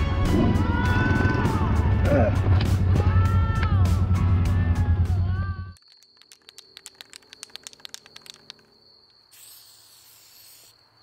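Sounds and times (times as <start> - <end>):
spray paint can rattling: 5.8 - 8.7, 9.3 - 10.7.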